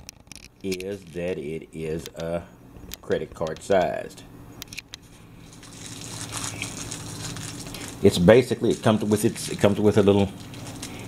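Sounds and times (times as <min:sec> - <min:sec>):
plastic bag crinkling: 0:05.0 - 0:11.0.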